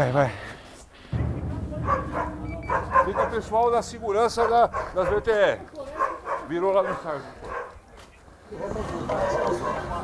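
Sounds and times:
background music: 0:01.2 - 0:05.6
dogs barking: 0:01.8 - 0:03.4, 0:04.3 - 0:07.8, 0:09.5 - 0:10.0.

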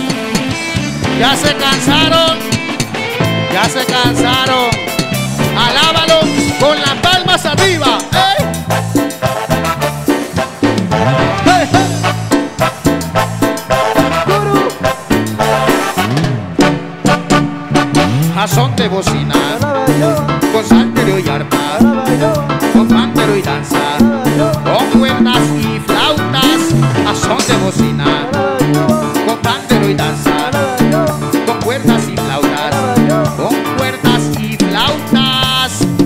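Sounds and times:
drums: 0:00.0 - 0:36.0
held bass notes: 0:00.0 - 0:36.0
melodic instrument lines: 0:00.0 - 0:36.0
percussion dance beat: 0:00.0 - 0:36.0.

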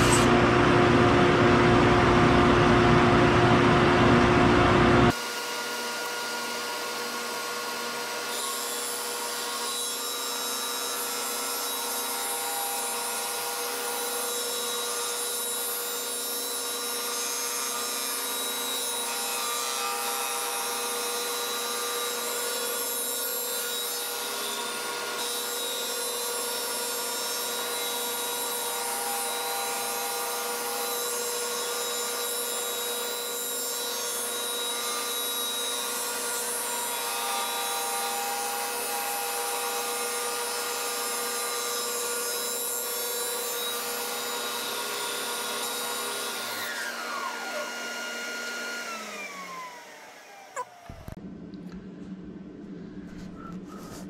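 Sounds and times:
disc sander motor: 0:43.8 - 0:51.2.

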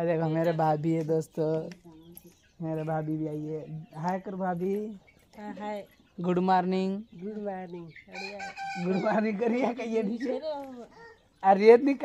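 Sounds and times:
women laughing: 0:08.8 - 0:11.0.

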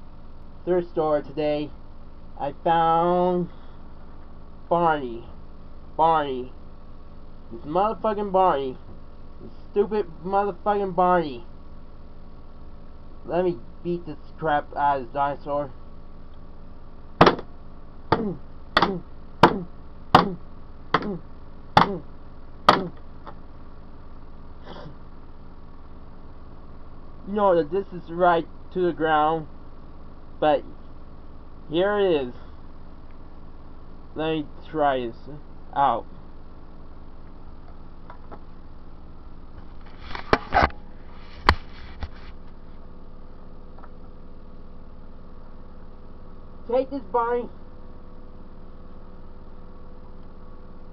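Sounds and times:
steady low hum: 0:00.0 - 0:50.9.

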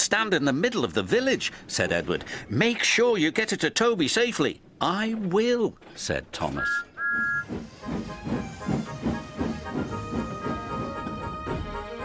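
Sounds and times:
steam locomotive chuffing: 0:05.0 - 0:12.0
two-tone steam whistle: 0:06.6 - 0:11.3
background music: 0:06.6 - 0:12.0.

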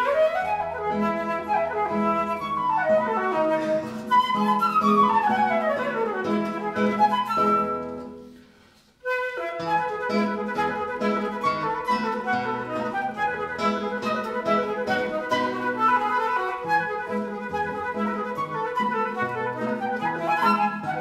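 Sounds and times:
flute melody: 0:00.0 - 0:08.4, 0:09.0 - 0:21.0
classical guitar plucking: 0:00.0 - 0:21.0.

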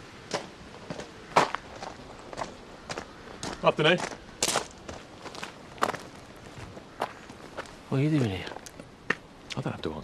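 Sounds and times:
footsteps on gravel: 0:00.3 - 0:09.2.

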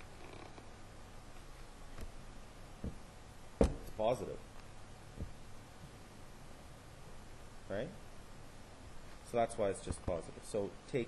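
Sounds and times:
microphone hiss: 0:00.0 - 0:11.0.

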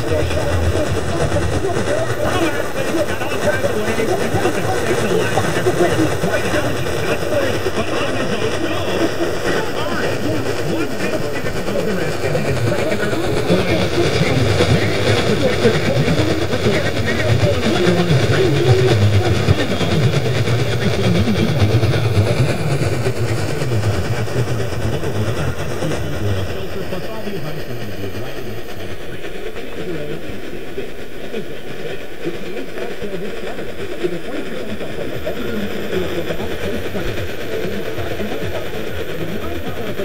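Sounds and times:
garbled radio talk: 0:00.0 - 0:40.0
radio static: 0:00.0 - 0:40.0.

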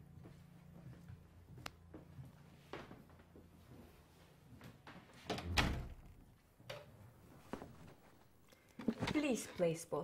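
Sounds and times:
door closing with dull thud: 0:05.3 - 0:06.2.

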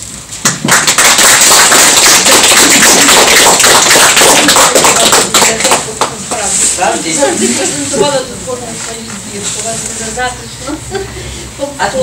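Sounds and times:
audience applauding: 0:00.4 - 0:06.2.

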